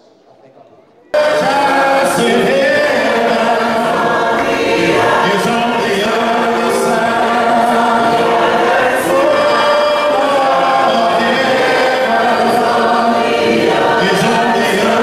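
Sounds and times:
choir singing in harmony: 1.1s - 15.0s.

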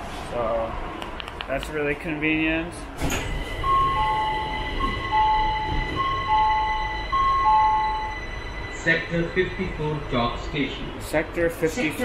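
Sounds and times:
train hum and rumble: 0.0s - 12.0s
electronic two-tone chime: 3.5s - 9.8s.

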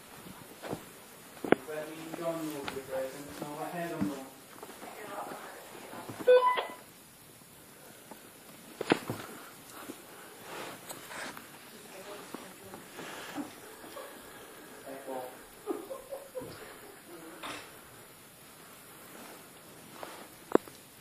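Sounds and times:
loud electronic beep: 6.3s - 6.8s.

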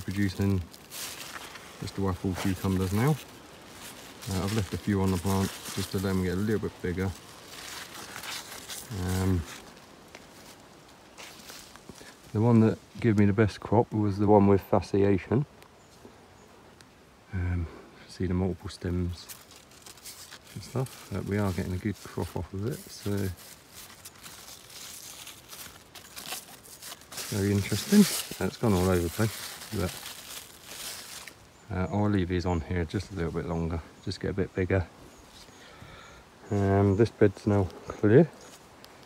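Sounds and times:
leaves and vines rustling: 0.0s - 39.0s.

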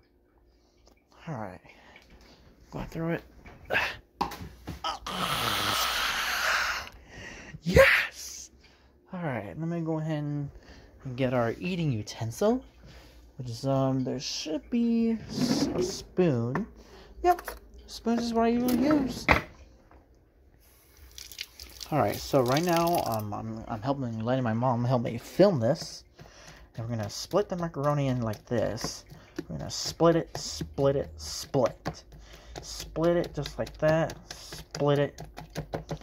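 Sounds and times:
person sighing: 3.7s - 4.0s, 4.8s - 8.2s.

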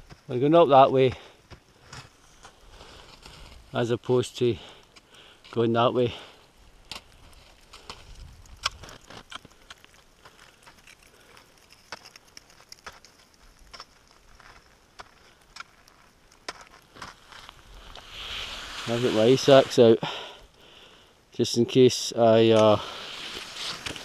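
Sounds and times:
boots crunching in frozen snow: 12.0s - 20.0s
hiss: 17.8s - 20.2s.

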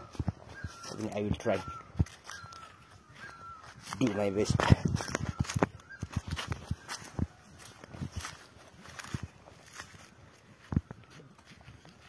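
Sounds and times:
footsteps through grass and straw: 0.0s - 12.0s.

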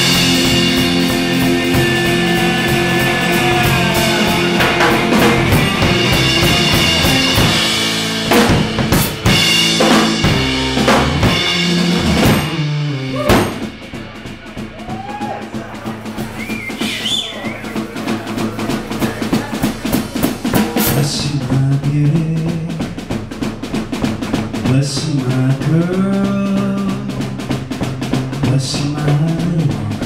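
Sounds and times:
sparse guitar notes: 0.0s - 14.7s
fast even drum strokes: 0.0s - 30.0s
rock band playing live: 0.0s - 30.0s.

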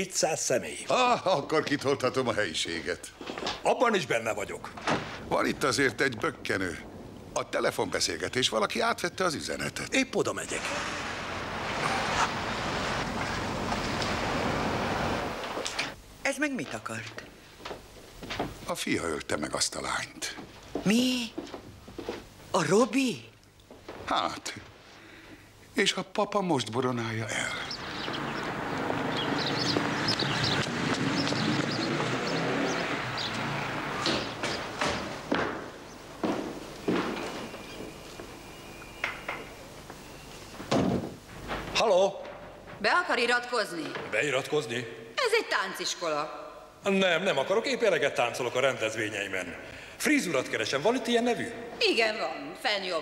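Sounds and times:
traffic hum: 9.4s - 16.2s, 26.8s - 41.8s
car pulling away: 10.5s - 15.7s, 27.7s - 36.1s
footsteps on hard stairs: 17.6s - 18.6s, 27.9s - 38.4s.

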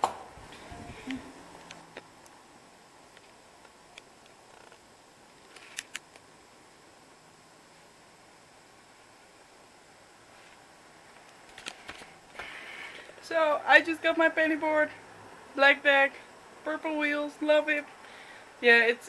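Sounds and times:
camera handling clicks: 5.5s - 6.2s.

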